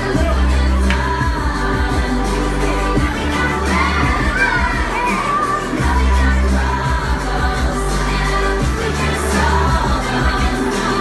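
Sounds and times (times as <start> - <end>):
pop song playing: 0.0 - 11.0
children shouting: 3.0 - 7.1.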